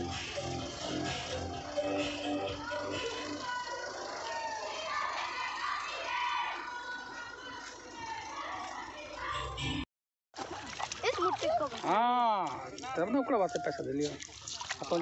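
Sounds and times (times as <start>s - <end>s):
music playing: 0.0s - 3.7s
people talking and calling out: 0.0s - 9.8s, 10.4s - 15.0s.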